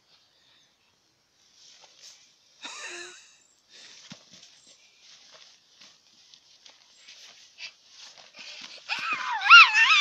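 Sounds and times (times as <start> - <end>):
child's wavering vocal sound: 8.9 - 10.0.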